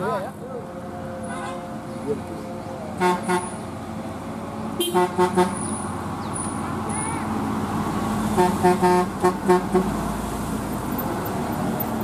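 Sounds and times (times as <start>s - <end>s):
truck engine drone: 0.0s - 12.0s
truck horn toots: 3.0s - 3.6s, 4.8s - 5.6s, 8.4s - 9.9s.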